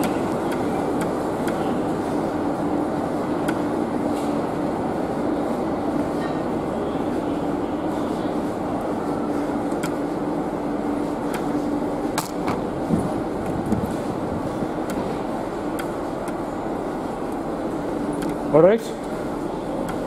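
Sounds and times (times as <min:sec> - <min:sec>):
train droning hum: 0:00.0 - 0:20.0
sharp clicks and knocks: 0:12.2 - 0:12.6, 0:15.7 - 0:16.4, 0:18.2 - 0:18.4.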